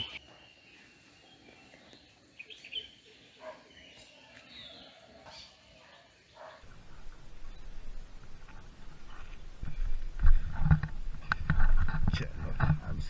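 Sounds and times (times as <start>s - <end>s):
faint birds chirping: 0.0s - 13.0s
steady rustling noise: 6.6s - 13.0s.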